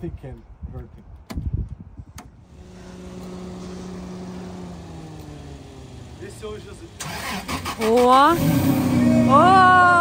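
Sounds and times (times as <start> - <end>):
low motor hum: 2.5 - 7.0.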